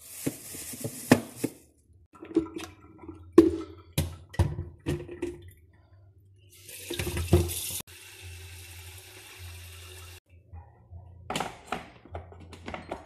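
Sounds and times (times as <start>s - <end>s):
tap water running into kettle: 6.6s - 10.2s.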